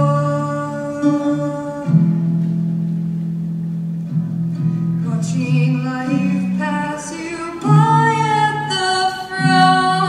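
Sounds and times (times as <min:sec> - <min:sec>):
woman singing: 0:00.0 - 0:02.4, 0:05.0 - 0:10.0
acoustic guitar chords: 0:00.0 - 0:10.0.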